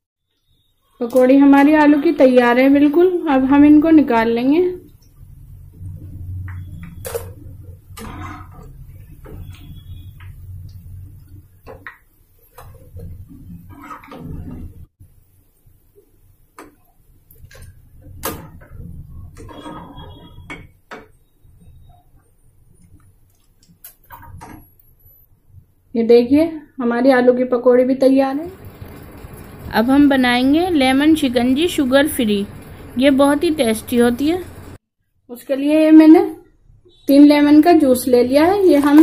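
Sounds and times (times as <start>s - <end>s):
metal spoon scraping a pan: 6.4s - 14.9s, 16.6s - 22.2s.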